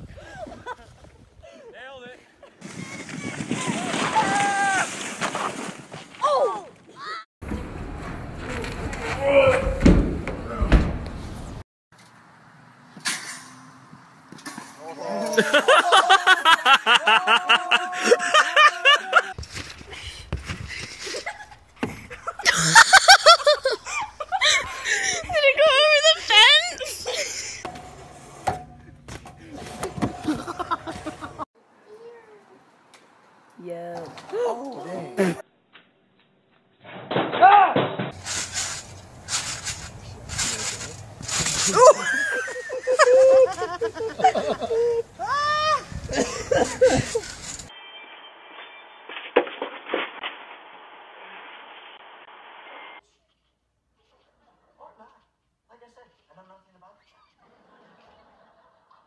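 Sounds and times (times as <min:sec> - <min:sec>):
trampoline bouncing rustle: 0:02.6 - 0:09.2, 0:19.4 - 0:31.4, 0:37.9 - 0:42.7, 0:45.8 - 0:47.7
trampoline bounce: 0:27.6 - 0:31.4.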